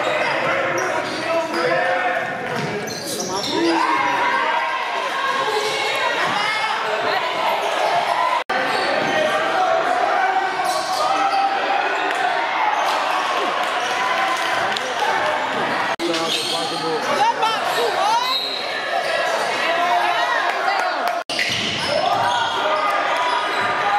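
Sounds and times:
voices of players and spectators: 0.0s - 23.9s.

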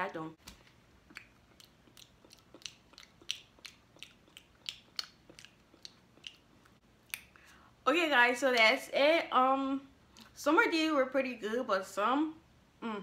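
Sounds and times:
person chewing: 0.5s - 7.5s.

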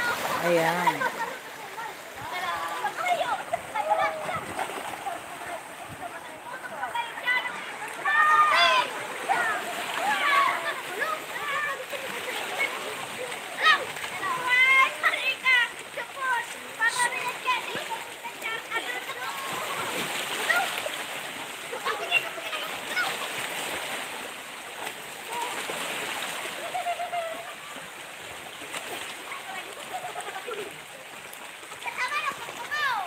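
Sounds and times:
waves splashing on rocks: 0.0s - 26.8s
swimmers calling and shouting: 0.0s - 33.0s.

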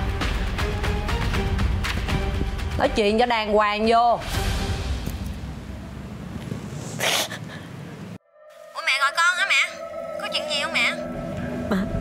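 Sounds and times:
woman sniffing: 6.8s - 7.7s.

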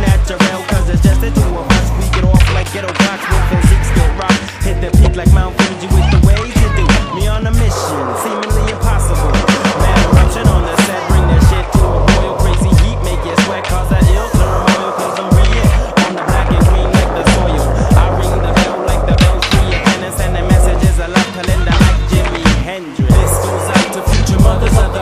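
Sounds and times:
hip-hop beat: 0.0s - 25.0s
skateboard clacking: 0.0s - 25.0s
skateboard wheels rolling on concrete: 0.0s - 25.0s.

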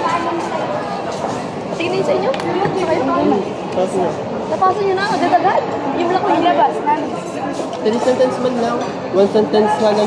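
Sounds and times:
overlapping conversational chatter: 0.0s - 10.0s.

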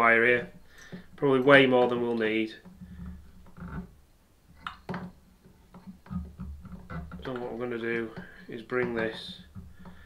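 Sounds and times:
small clicks and taps: 4.6s - 10.0s.

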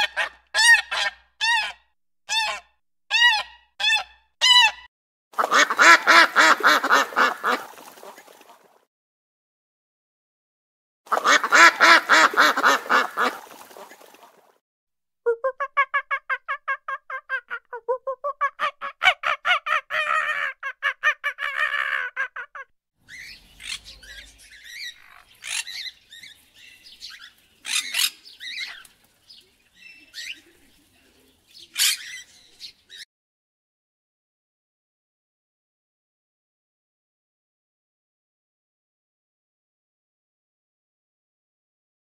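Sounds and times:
cockatoo screeching: 0.0s - 4.9s, 18.4s - 23.9s
ducks honking: 5.4s - 8.4s, 11.1s - 14.3s.

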